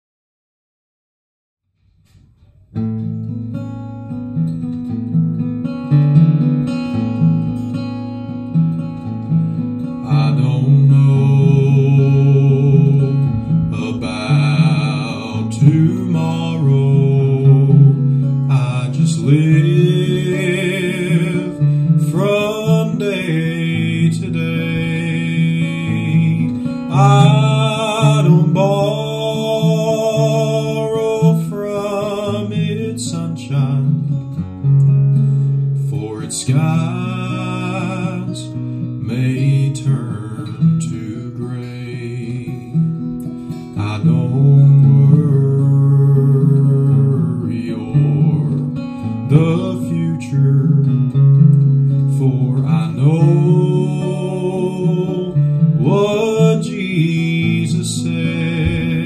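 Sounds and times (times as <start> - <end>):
acoustic guitar chords: 1.8 - 59.0.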